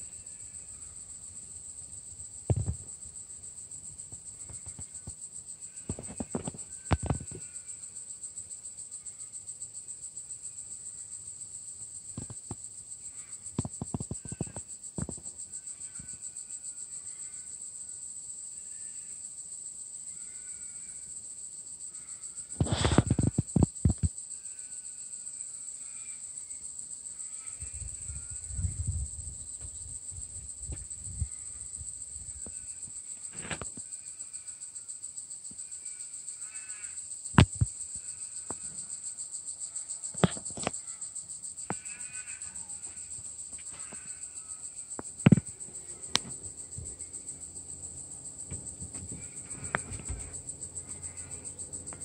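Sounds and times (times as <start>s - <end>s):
insects trilling: 0.0s - 52.0s
sharp knocks: 45.0s - 46.9s
handling noise bump: 48.4s - 50.5s.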